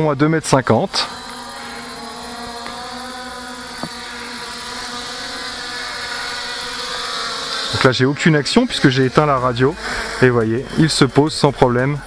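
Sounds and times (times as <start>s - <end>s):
drone propellers whirring: 0.0s - 12.0s.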